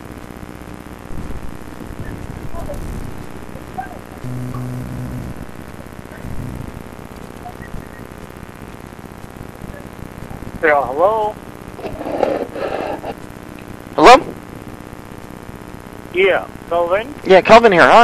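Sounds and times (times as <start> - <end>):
low steady hum: 0.0 - 18.0
muffled telephone line noise: 0.0 - 18.0.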